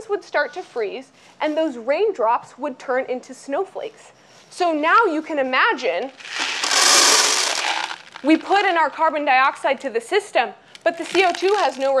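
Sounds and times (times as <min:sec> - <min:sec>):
liquid pouring from plastic pitcher: 0:06.2 - 0:08.7.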